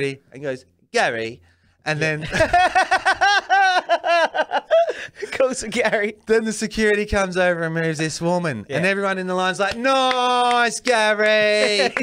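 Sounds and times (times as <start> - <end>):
man laughing loudly: 2.2 - 5.5, 11.6 - 12.0.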